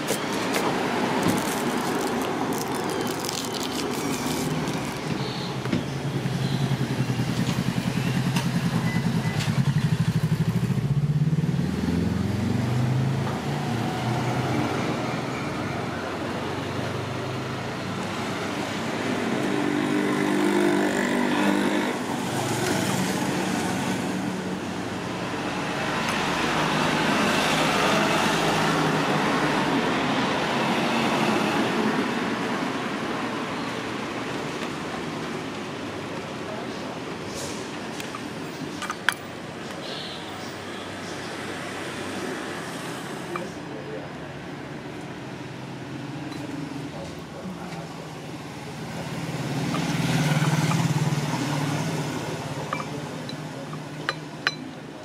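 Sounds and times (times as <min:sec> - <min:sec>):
traffic passing: 0:00.0 - 0:55.0.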